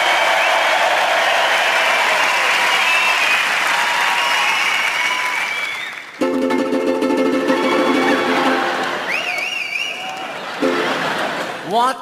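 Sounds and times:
audience applauding: 0:00.0 - 0:11.7.

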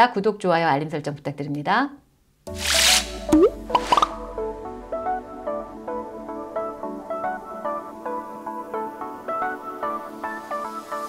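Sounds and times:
rising bloop: 0:02.9 - 0:04.5.

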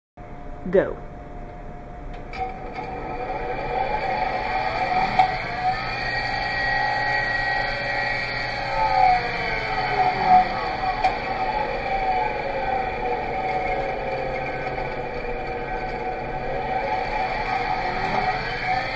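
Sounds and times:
electric motor whining: 0:02.2 - 0:18.9.

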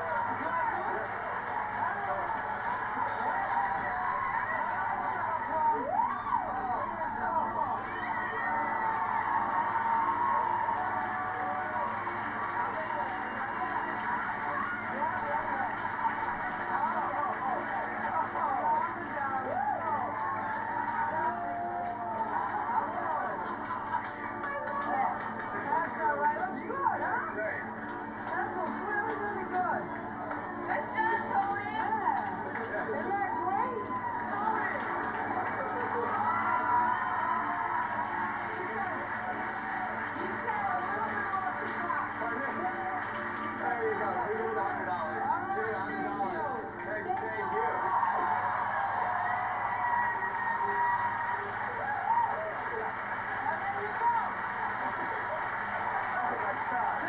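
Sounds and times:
muffled game-show music from television: 0:00.0 - 0:57.0
studio audience laughing: 0:22.7 - 0:24.4.

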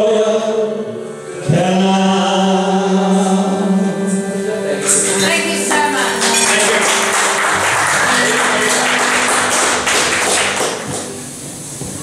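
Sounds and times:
accordion: 0:00.0 - 0:12.0
strummed acoustic guitar: 0:03.2 - 0:12.0.

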